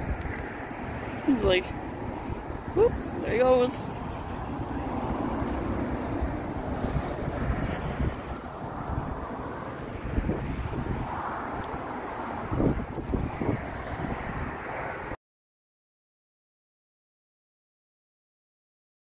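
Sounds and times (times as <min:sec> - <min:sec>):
wind buffeting microphone: 0:00.0 - 0:15.2.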